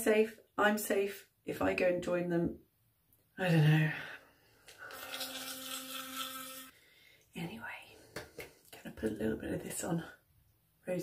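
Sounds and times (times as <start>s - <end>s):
electric toothbrush buzzing: 4.8s - 6.7s.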